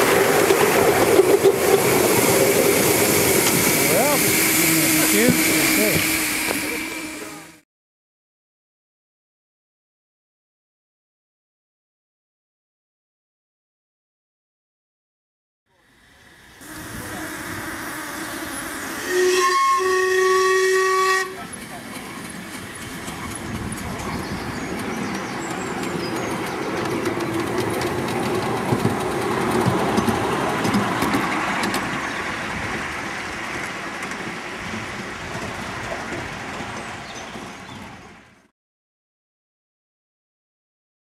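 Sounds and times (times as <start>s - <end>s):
steam exhaust: 0.0s - 7.6s, 15.7s - 23.2s
wheel noise on track: 0.0s - 7.6s, 21.2s - 38.4s
steam whistle toot: 2.9s - 7.6s, 16.6s - 21.4s.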